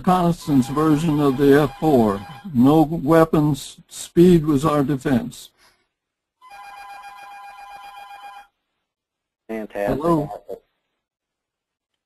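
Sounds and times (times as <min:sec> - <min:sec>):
electronic warbling ring tone: 0:00.6 - 0:02.5, 0:06.4 - 0:08.5.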